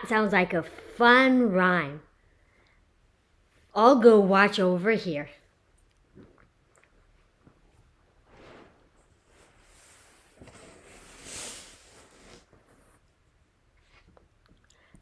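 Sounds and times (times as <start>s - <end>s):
rustling of felt board: 7.8s - 13.2s.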